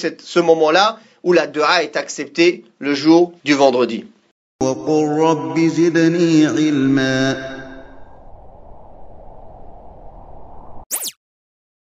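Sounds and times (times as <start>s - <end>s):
person chanting with echo: 4.6s - 8.2s
low steady rushing noise: 7.9s - 10.8s.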